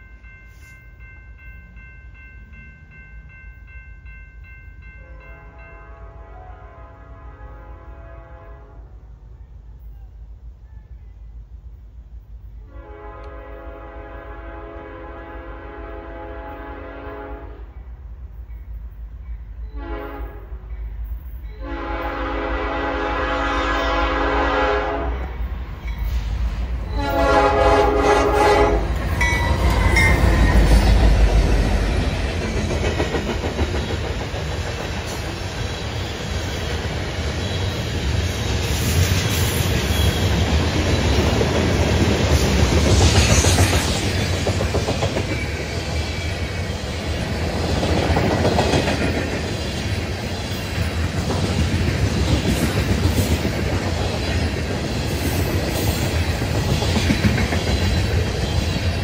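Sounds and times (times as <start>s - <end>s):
diesel locomotives rumbling: 0.0s - 59.0s
train horn: 4.9s - 9.2s, 12.6s - 17.8s, 19.6s - 20.7s, 21.5s - 25.4s, 26.8s - 31.3s
train wheels clattering on rails: 18.4s - 59.0s.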